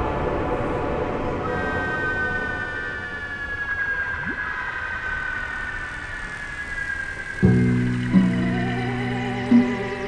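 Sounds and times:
noisy synth wash: 7.4 - 10.0.

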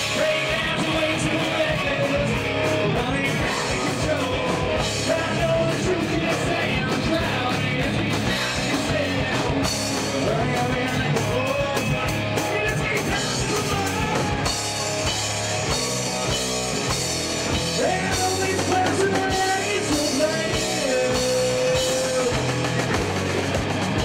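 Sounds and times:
person singing lead vocal: 0.0 - 15.1, 17.5 - 23.0
drum kit: 0.0 - 24.0
electric guitar: 0.0 - 24.0.

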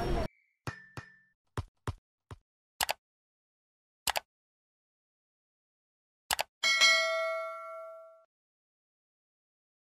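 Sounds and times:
bell-like notification chime: 6.6 - 8.3.

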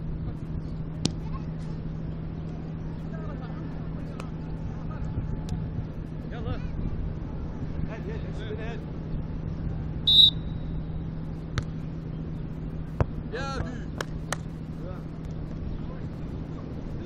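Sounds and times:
steady low hum: 0.0 - 17.0
short shrill whistle: 10.1 - 10.8
hands slapping volleyball: 13.0 - 14.5.

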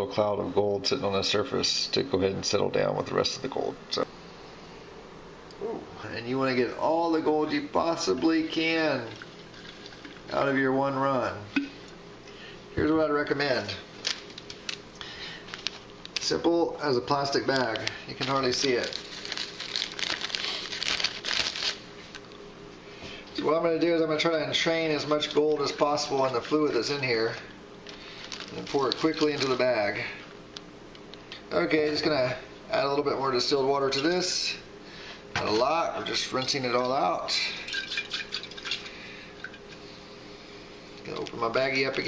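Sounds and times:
faint steady hum: 0.0 - 42.0
plastic freezer bag crinkling: 13.4 - 22.4, 25.0 - 30.1.

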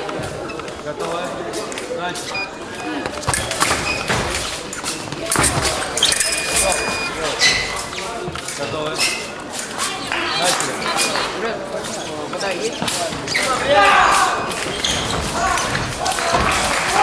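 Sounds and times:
voices calling out in echoing hall: 0.0 - 17.0.

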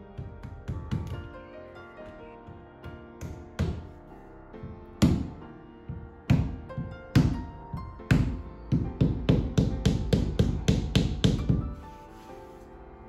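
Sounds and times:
mallet knocking on fabric hood: 5.0 - 11.8.

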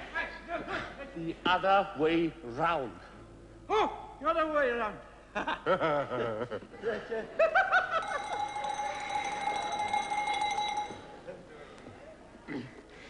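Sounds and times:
laughter: 5.3 - 8.5.

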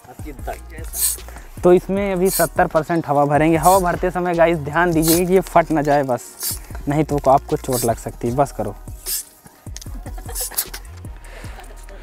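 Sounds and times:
background music: 0.0 - 12.0
short air hiss: 0.8 - 1.6, 6.2 - 6.8, 7.6 - 8.1, 8.9 - 9.5, 10.3 - 10.8.

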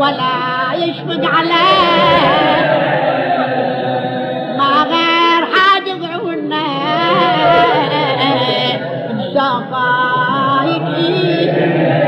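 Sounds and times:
man chanting a lament: 0.0 - 12.0.

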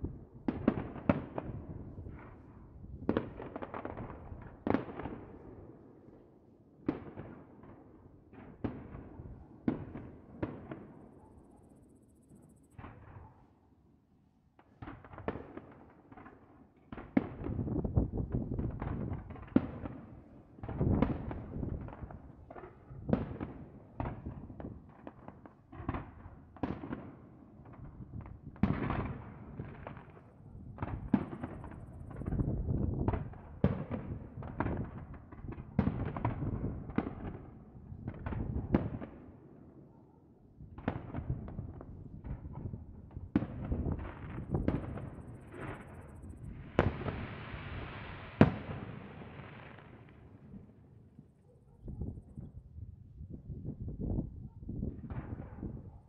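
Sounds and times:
fireworks bangs and crackles: 0.0 - 6.2, 6.8 - 13.5, 14.6 - 52.6, 53.4 - 56.0.

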